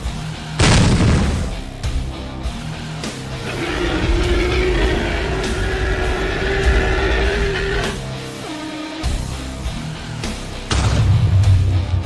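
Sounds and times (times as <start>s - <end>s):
monster roar: 3.3s - 8.1s.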